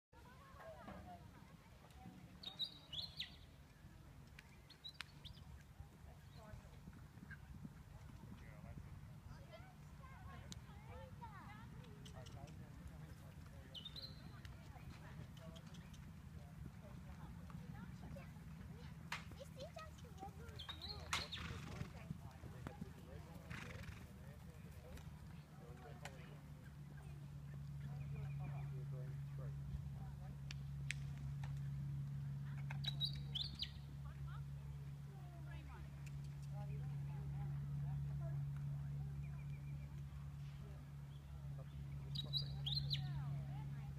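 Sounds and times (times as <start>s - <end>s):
distant hoofbeats on grass: 0.2s - 43.9s
murmur of voices: 5.4s - 43.9s
hoofbeats on grass: 11.0s - 26.4s.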